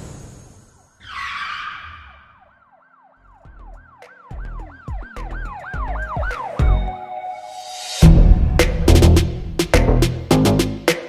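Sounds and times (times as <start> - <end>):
siren-like pitch swoops: 0.5 - 2.6
bass thumps: 8.0 - 10.8.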